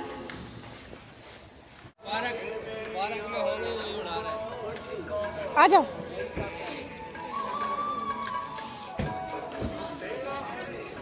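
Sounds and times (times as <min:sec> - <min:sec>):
faint music with held notes: 0:02.0 - 0:11.0.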